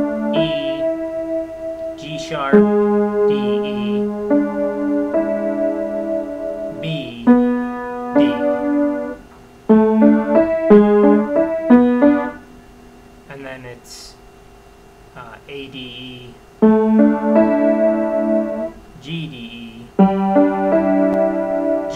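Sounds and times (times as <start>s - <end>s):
slow piano notes and chords: 0.0s - 12.8s, 16.6s - 18.9s, 19.9s - 21.9s.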